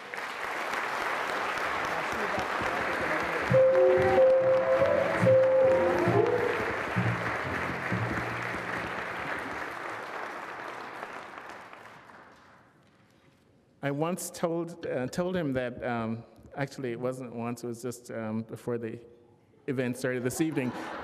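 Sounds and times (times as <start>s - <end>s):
audience applauding: 0.0s - 12.6s
play-off music: 3.5s - 9.1s.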